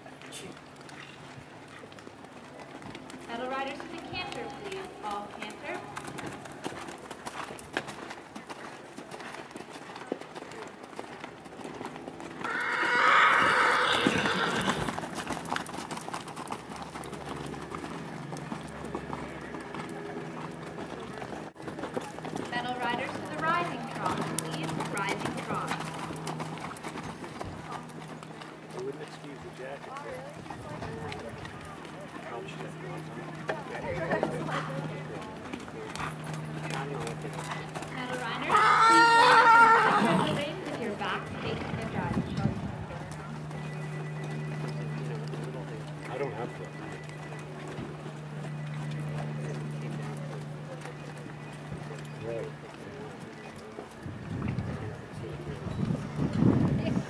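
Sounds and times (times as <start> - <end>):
hoofbeats on sand: 0.8 - 57.0
horse whinnying: 12.4 - 14.9, 38.5 - 40.5.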